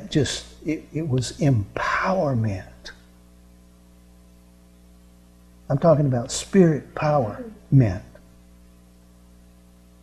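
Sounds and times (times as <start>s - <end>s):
electrical mains hum: 0.0s - 10.0s
faint hiss: 0.0s - 10.0s.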